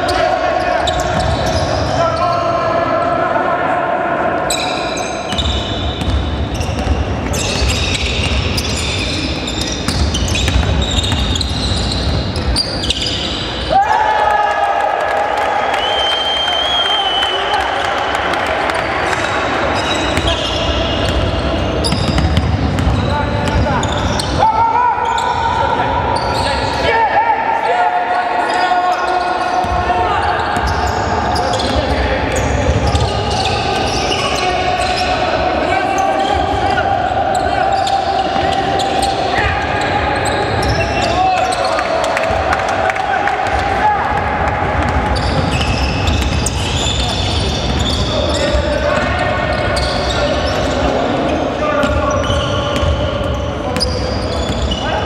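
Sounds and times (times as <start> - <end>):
players' voices: 0.0 - 55.0.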